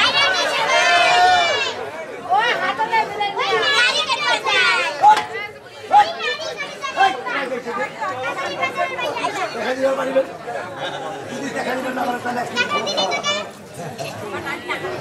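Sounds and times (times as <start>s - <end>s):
voices talking over one another: 0.0s - 15.0s.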